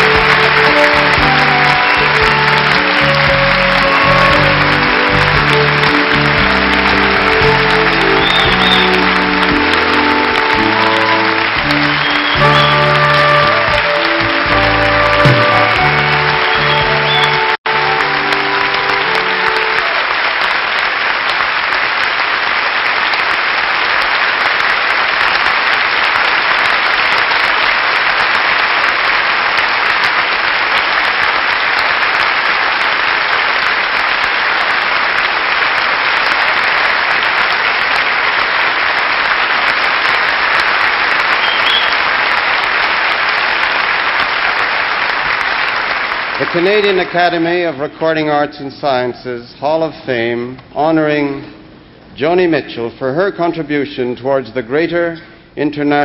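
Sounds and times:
music: 0.0s - 21.7s
large audience applauding: 0.0s - 48.3s.

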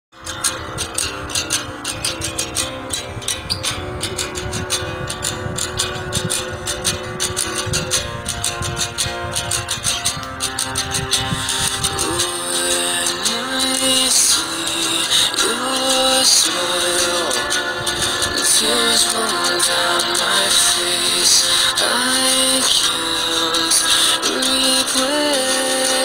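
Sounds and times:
instrumental music with steady beat: 0.1s - 26.0s.

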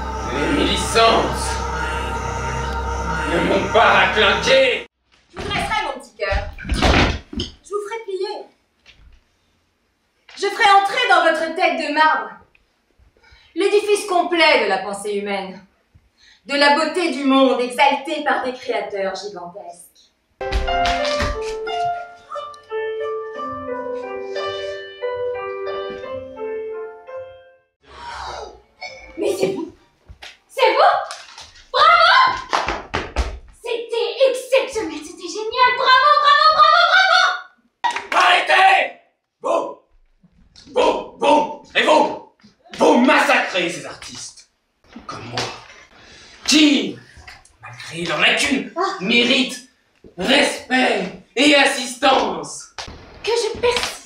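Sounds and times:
young woman exclaiming: 31.8s - 32.4s
sharp hand claps: 32.4s - 33.2s, 37.8s - 38.4s.

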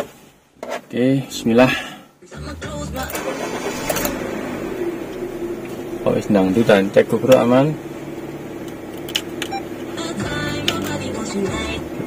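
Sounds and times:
music from car stereo: 2.2s - 5.0s, 9.4s - 12.0s
car engine idling: 2.4s - 12.0s
stereo control clicks: 10.6s - 11.0s.

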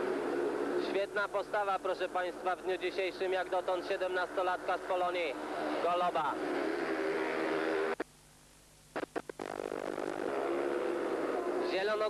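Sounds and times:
motorcycle engine noise: 0.0s - 1.0s, 2.3s - 8.0s, 9.0s - 12.0s
short crackles: 8.9s - 10.5s.

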